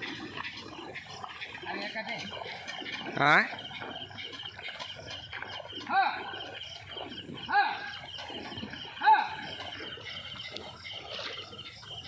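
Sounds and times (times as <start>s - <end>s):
man calling to animals: 3.2s - 3.6s, 5.8s - 6.4s, 7.5s - 7.9s, 9.0s - 9.4s.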